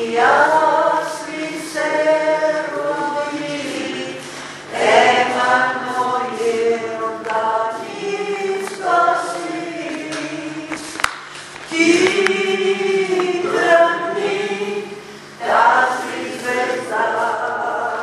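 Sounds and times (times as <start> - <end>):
group singing a hymn: 0.0 - 18.0.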